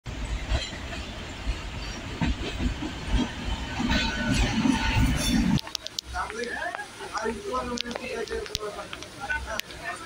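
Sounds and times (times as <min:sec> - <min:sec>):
train rumbling past: 0:00.1 - 0:10.0.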